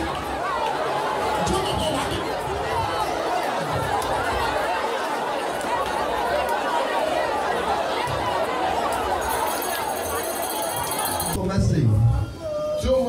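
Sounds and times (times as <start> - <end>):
congregation voices calling out: 0.0 - 11.4.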